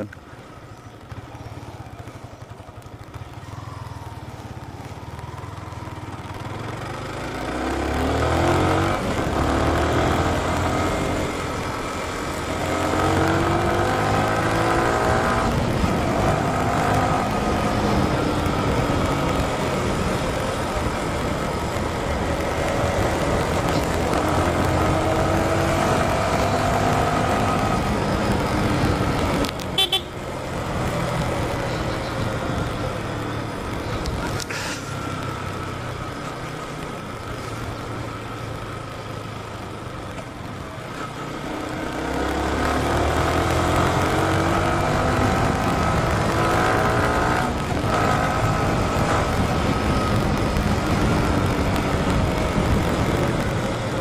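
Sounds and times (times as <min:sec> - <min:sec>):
wind and road noise: 0:00.0 - 0:54.0
motorcycle engine revving through gears: 0:05.1 - 0:54.0.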